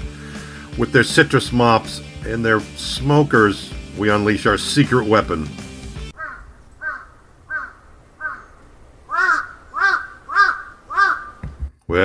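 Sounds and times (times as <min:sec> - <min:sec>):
crow cawing: 0:06.1 - 0:11.6.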